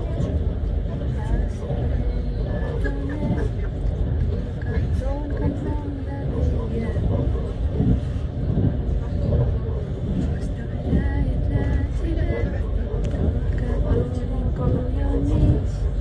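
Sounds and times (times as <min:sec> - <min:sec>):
people talking indistinctly: 0:00.0 - 0:16.0
vehicle rumble from inside: 0:00.0 - 0:16.0.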